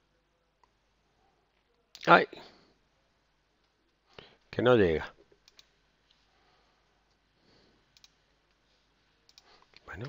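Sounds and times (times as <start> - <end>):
faint computer mouse clicks: 5.4 - 6.2, 7.9 - 8.6, 9.3 - 9.9.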